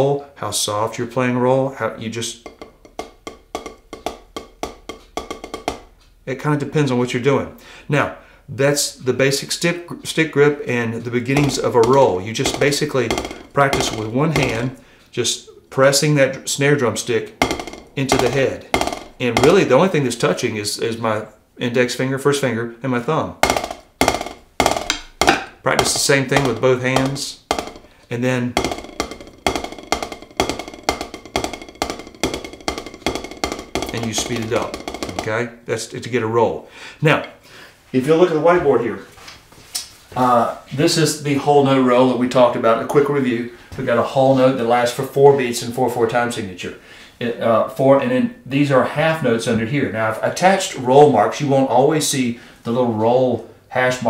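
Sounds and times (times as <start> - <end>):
drumsticks striking practice pad: 2.4 - 6.0, 11.3 - 14.8, 17.4 - 19.9, 23.4 - 35.4.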